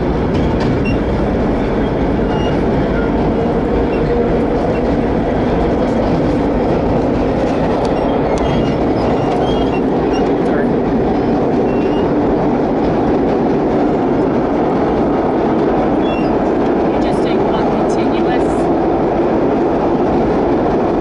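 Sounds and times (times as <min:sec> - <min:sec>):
subway train rumbling: 0:00.0 - 0:21.0.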